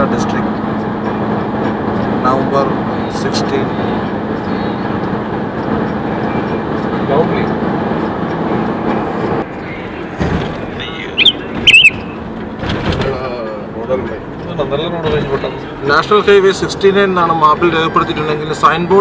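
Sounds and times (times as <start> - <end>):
road and engine noise in car: 0.0 - 19.0
high-pitched beeps: 11.1 - 12.2.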